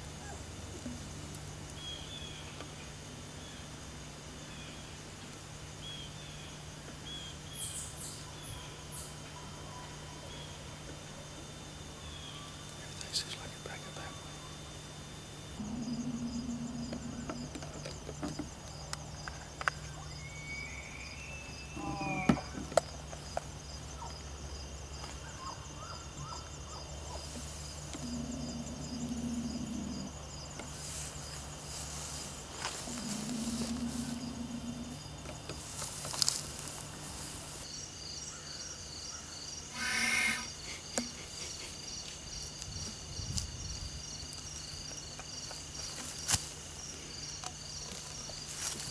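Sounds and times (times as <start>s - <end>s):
insects chirping: 0.0s - 48.9s
elk bugling: 21.7s - 22.6s, 32.7s - 35.0s, 39.7s - 41.5s.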